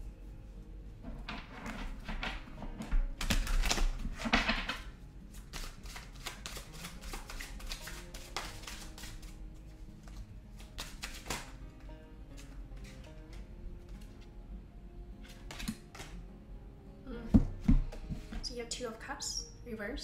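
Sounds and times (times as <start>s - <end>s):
soft background music: 0.0s - 20.0s
cards being shuffled: 1.5s - 14.3s, 15.2s - 16.2s.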